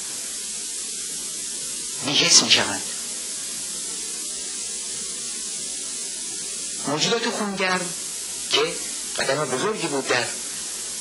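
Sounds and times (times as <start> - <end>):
high-pitched tape hiss: 0.0 - 11.0.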